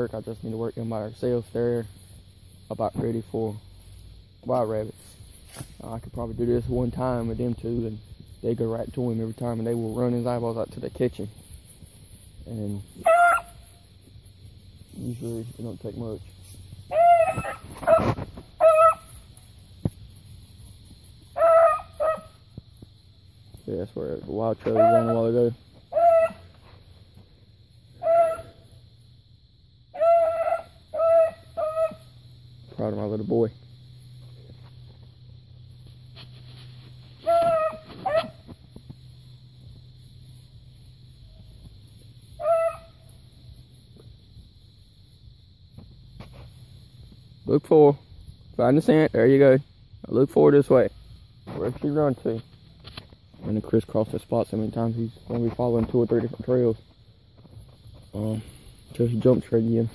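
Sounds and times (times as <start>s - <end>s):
dog baying: 13.0s - 13.6s, 16.9s - 19.1s, 21.4s - 22.4s, 24.7s - 25.2s, 25.9s - 26.6s, 28.0s - 28.6s, 30.0s - 32.1s, 37.2s - 38.4s, 42.4s - 43.0s.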